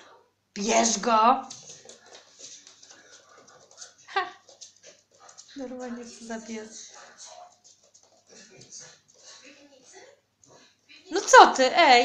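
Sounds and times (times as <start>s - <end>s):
dog claws ticking on floor: 0.9s - 9.5s.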